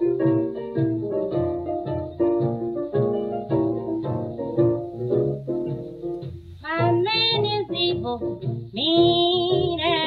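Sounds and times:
blues band with piano and bass: 0.0 - 10.0
woman singing: 6.6 - 10.0.

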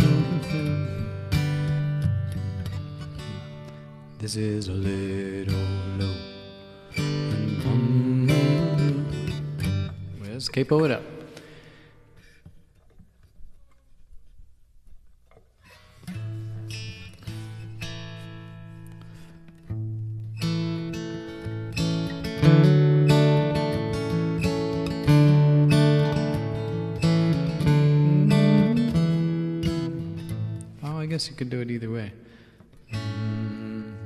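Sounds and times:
acoustic guitar picking and chords: 0.0 - 34.0.

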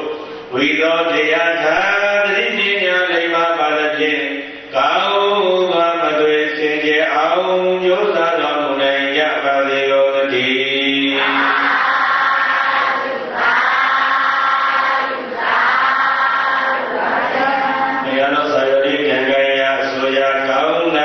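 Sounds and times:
monk chanting into a microphone: 0.0 - 12.5, 17.3 - 21.0.

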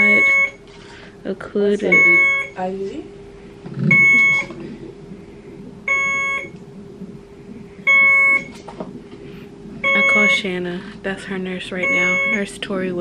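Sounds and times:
infusion pump alarm beeping: 0.0 - 1.0, 1.8 - 2.6, 3.9 - 4.6, 5.8 - 6.6, 7.8 - 8.6, 9.8 - 10.6, 11.7 - 12.6
steady low hum: 0.0 - 13.0.

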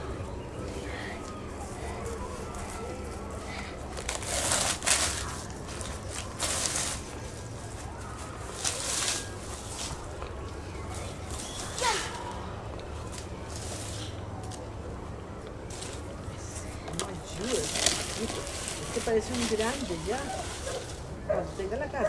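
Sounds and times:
rake scratching through leaves: 2.4 - 10.2, 13.1 - 14.2, 17.3 - 21.7.

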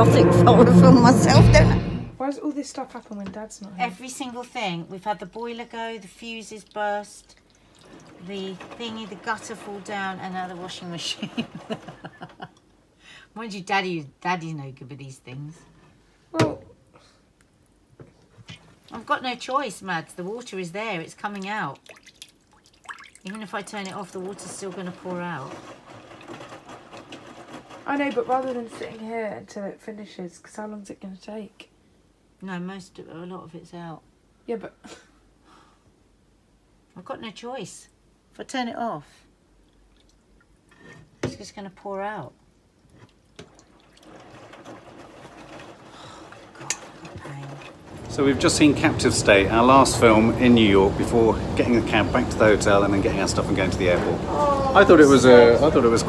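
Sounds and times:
water dripping into bowl of water: 6.2 - 8.1, 21.2 - 24.2, 39.6 - 40.6
washing machine running: 7.7 - 12.5, 22.8 - 29.1, 43.4 - 56.0.

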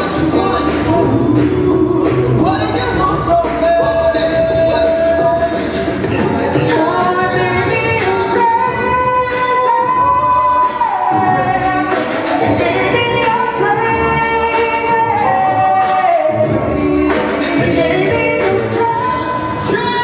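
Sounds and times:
male group singing in harmony: 0.0 - 8.6, 10.6 - 20.0
vocal percussion beat: 0.0 - 20.0.

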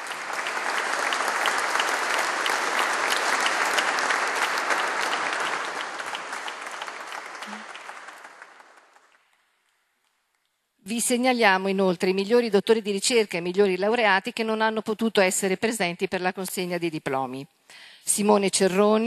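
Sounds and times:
audience applauding: 0.0 - 9.5.

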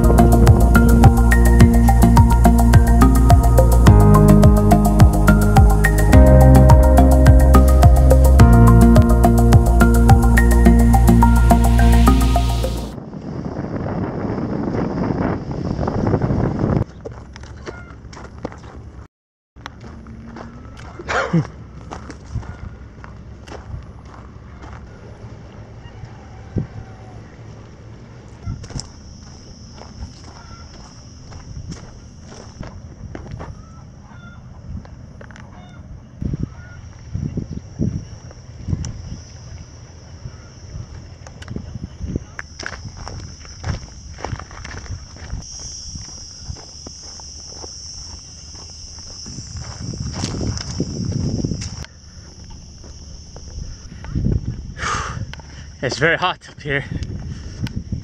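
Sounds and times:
cicadas buzzing: 0.0 - 13.0, 19.6 - 58.0
footsteps on dirt path: 16.8 - 25.4, 28.6 - 33.8, 40.9 - 54.6.

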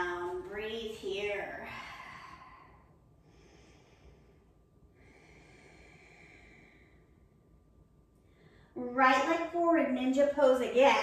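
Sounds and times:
woman breathing slowly: 1.5 - 8.8.

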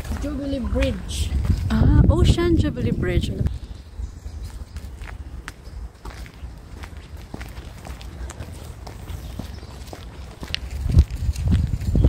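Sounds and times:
footsteps on pavement: 0.0 - 12.0
steady low rumble: 0.0 - 12.0.

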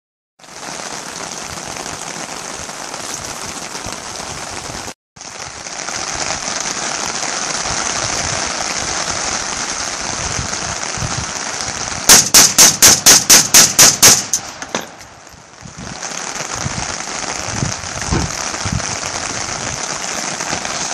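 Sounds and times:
rain on fabric canopy: 0.4 - 20.9.

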